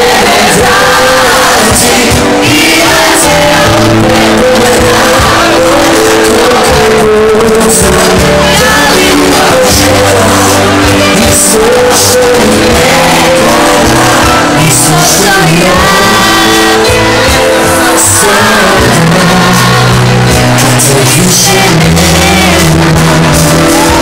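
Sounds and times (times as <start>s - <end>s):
live band with singing: 0.0s - 24.0s.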